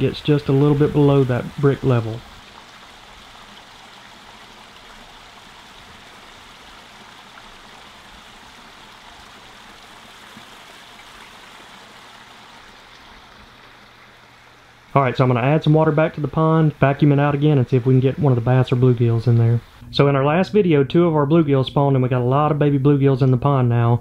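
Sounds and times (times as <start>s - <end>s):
waterfall splashing into pond: 0.0s - 19.8s.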